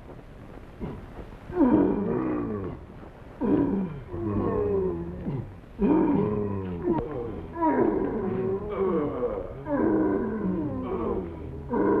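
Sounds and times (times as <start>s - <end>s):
loud long falling cries: 5.8s - 12.0s.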